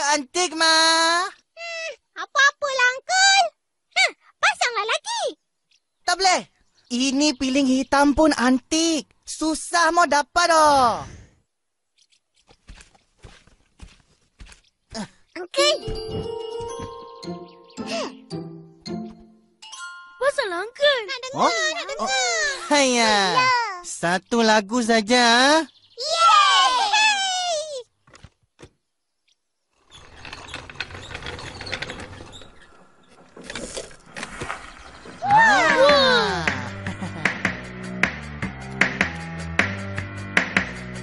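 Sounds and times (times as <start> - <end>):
footsteps: 12.0 - 17.4.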